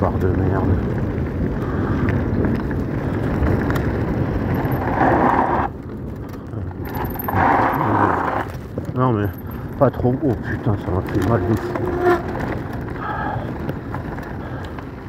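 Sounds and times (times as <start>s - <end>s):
bike tyres rumbling on gravel: 0.0s - 15.0s
bursts of gravel noise: 0.0s - 15.0s.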